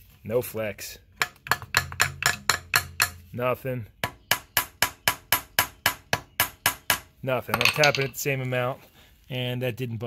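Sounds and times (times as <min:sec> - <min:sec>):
hammer tapping on metal: 0:01.2 - 0:03.3, 0:04.0 - 0:07.1.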